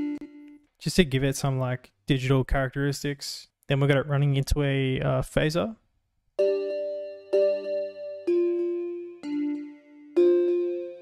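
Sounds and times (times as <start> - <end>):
synth bell chords: 6.4 - 11.0.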